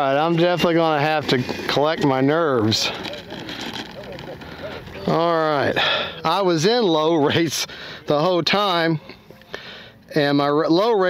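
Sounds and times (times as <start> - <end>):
faint background voices: 0.1 - 6.6.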